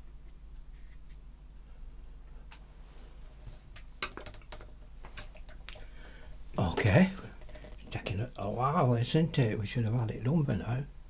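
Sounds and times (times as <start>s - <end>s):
man talking: 6.6s - 11.0s.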